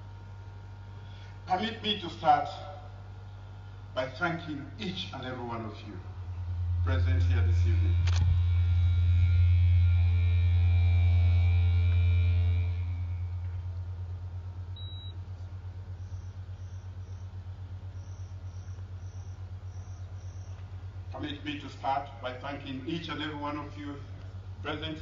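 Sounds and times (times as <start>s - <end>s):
electrical hum: 0.0s - 25.0s
pulsing buzz: 0.0s - 25.0s
cricket chirps: 15.8s - 20.9s.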